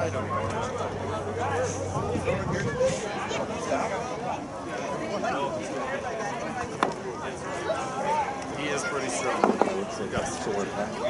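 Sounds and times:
men talking and calling: 0.0 - 11.0.

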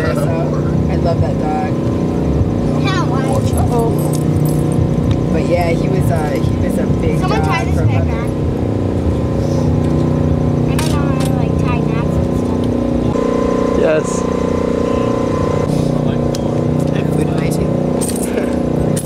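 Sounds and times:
motor hum with pitched tones: 0.0 - 19.0.

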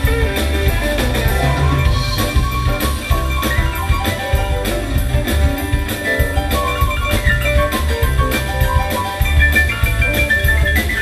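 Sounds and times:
bass guitar: 0.0 - 11.0
drum beat: 0.0 - 11.0
electric guitar: 0.0 - 11.0
keyboard: 0.0 - 11.0.

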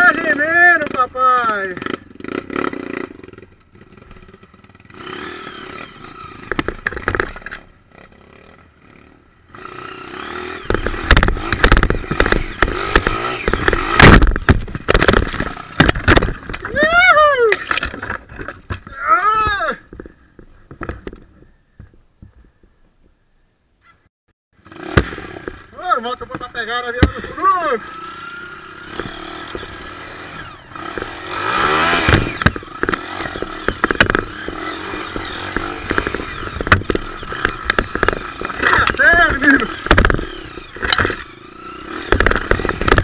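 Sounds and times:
dirt bike engine: 0.0 - 24.0, 24.6 - 43.0
knocks and clatter: 10.6 - 16.7, 30.9 - 41.2, 42.0 - 43.0.

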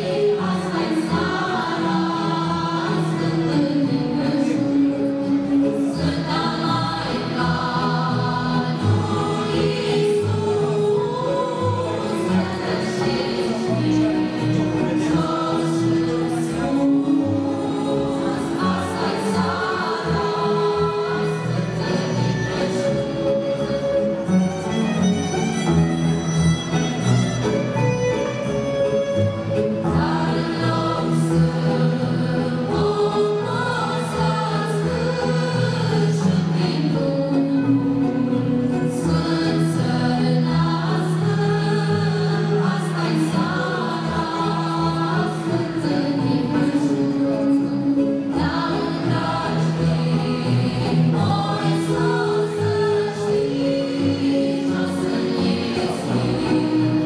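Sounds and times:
choir singing: 0.0 - 25.1, 29.6 - 57.0.

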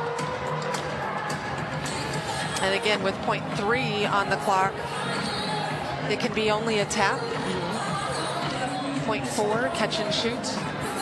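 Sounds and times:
arena music: 0.0 - 11.0
crowd murmur: 0.0 - 11.0.

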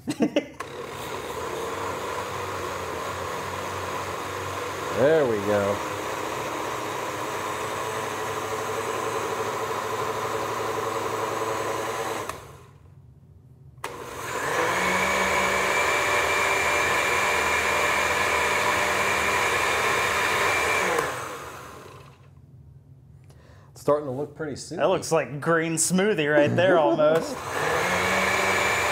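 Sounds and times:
blender running: 0.6 - 12.9, 13.8 - 22.3, 26.4 - 28.9.

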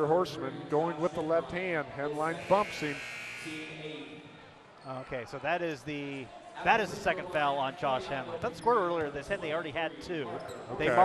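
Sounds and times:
faint voices in gym: 0.0 - 11.0
high buzzing tone: 2.3 - 3.8.

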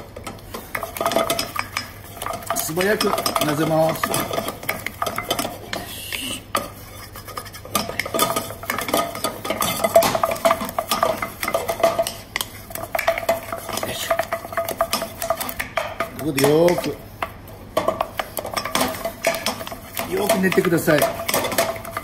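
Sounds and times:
wooden spatula scraping saucepan: 0.2 - 22.0.

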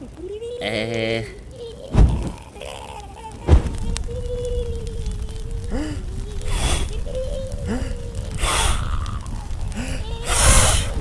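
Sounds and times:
low rumble: 3.3 - 11.0.

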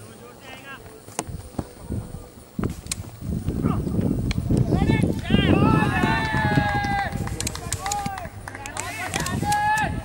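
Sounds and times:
voices shouting: 4.6 - 10.0
sharp clicks: 7.2 - 9.9.

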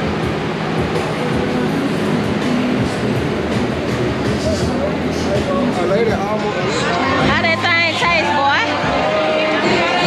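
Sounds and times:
cooler fan rushing: 0.0 - 10.0
crowd chatter: 0.0 - 10.0.

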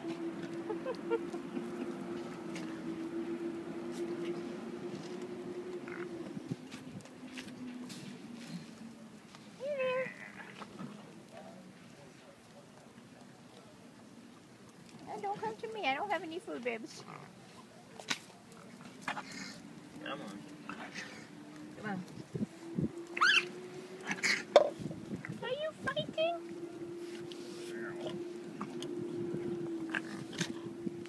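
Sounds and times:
raccoons squabbling: 4.0 - 6.8, 18.6 - 21.9, 22.9 - 25.5, 27.4 - 30.8
raccoon whining call: 22.8 - 24.9.

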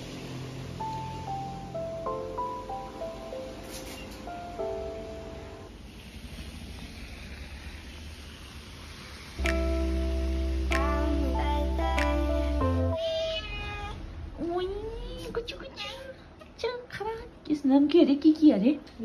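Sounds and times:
background music: 0.8 - 5.7, 9.4 - 13.0
cat meowing: 13.0 - 14.0.

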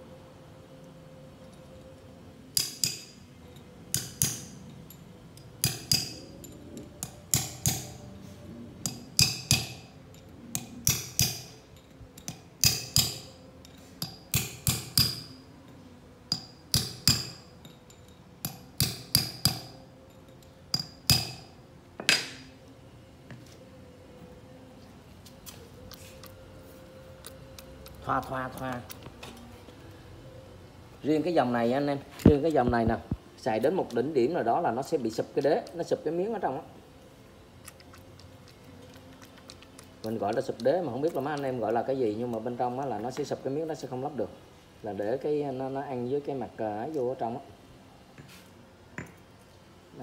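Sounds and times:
hammer striking steel: 2.6 - 3.2, 3.9 - 4.6, 5.6 - 6.2, 7.0 - 8.0, 8.8 - 9.9, 10.6 - 11.6, 12.2 - 13.3, 14.0 - 15.4, 16.3 - 17.5, 18.4 - 19.8, 20.7 - 22.5.

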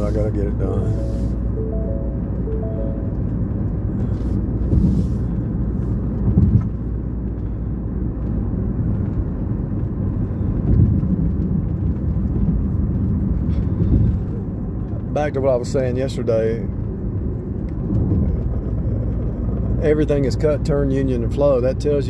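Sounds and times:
car tyre and engine rumble: 0.0 - 22.0.

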